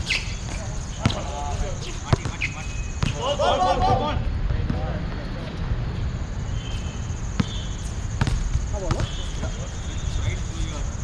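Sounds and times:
basketball bouncing on court: 0:02.1 - 0:03.2, 0:07.3 - 0:07.6, 0:08.2 - 0:09.5.

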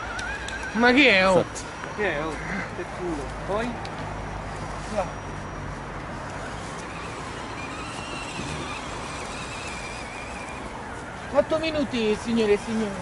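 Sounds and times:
small electric motor whining: 0:00.0 - 0:02.4, 0:04.5 - 0:13.0.

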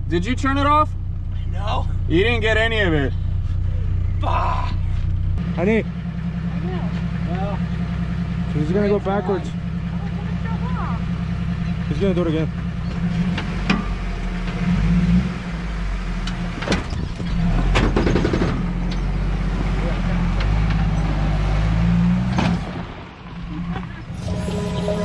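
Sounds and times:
car engine revving: 0:04.8 - 0:25.0
background music: 0:24.2 - 0:25.0.

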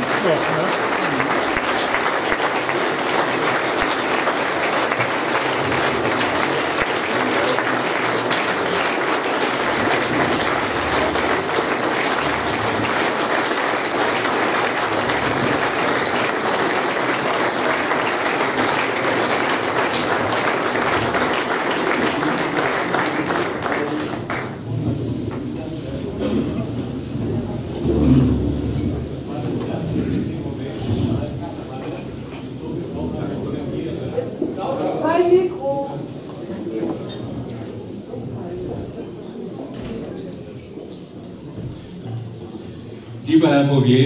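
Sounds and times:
audience applause: 0:00.0 - 0:26.6.

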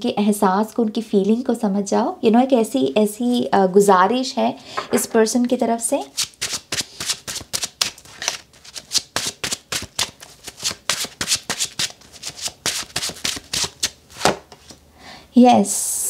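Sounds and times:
cards being shuffled: 0:06.2 - 0:14.8.

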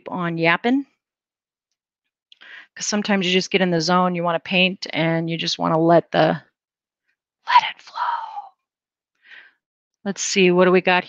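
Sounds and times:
short faint breath: 0:09.2 - 0:09.6
woman's breathy exhale: 0:09.2 - 0:09.6.

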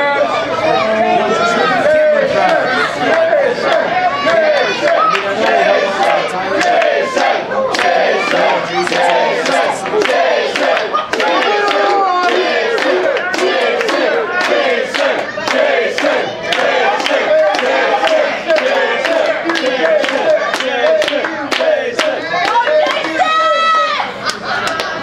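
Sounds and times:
crowd shouting and yelling: 0:00.0 - 0:25.0
people clapping: 0:01.9 - 0:25.0.

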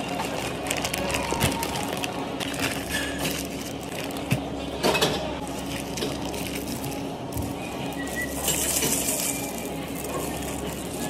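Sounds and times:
plastic rustling: 0:00.0 - 0:11.0.

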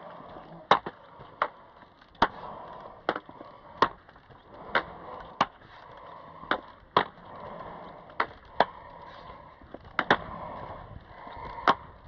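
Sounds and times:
roller-ski wheels rolling on pavement: 0:00.0 - 0:12.0
ski poles clicking on asphalt: 0:00.0 - 0:12.0.

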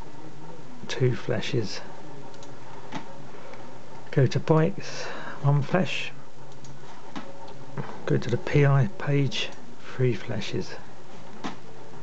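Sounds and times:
steady background hiss: 0:00.0 - 0:12.0
soft computer mouse clicks: 0:02.3 - 0:02.6, 0:06.5 - 0:06.8.

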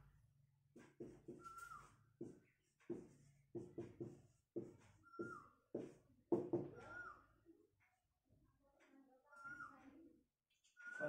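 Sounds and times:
marker tapping on whiteboard: 0:00.8 - 0:07.0
marker tip squeaking: 0:01.4 - 0:02.0.

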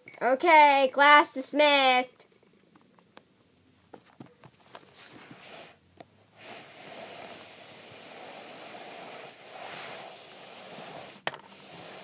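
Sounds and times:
microphone rushing hiss: 0:04.9 - 0:12.0.

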